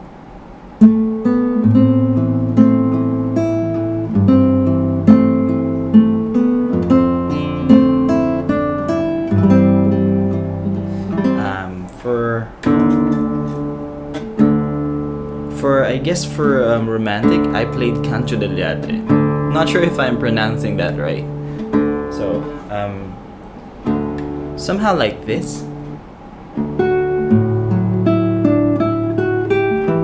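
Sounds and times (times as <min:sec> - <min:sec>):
classical guitar fingerpicking: 0:00.8 - 0:30.0.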